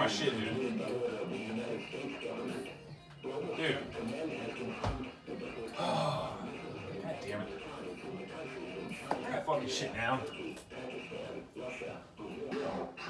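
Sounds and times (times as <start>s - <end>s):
music: 0.0s - 13.0s
television voice: 0.0s - 13.0s.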